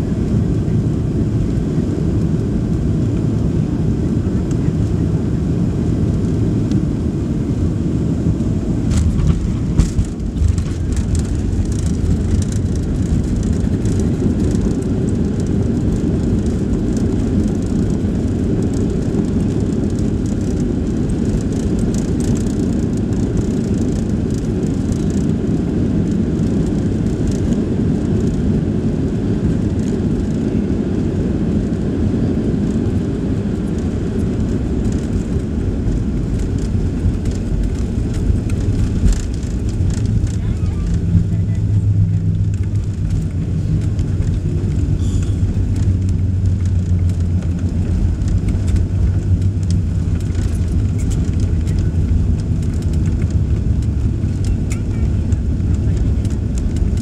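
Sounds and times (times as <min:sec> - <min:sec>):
airplane landing jolt and rattle: 0:00.0 - 0:57.0
jet engines and landing gear rumble: 0:00.0 - 0:57.0.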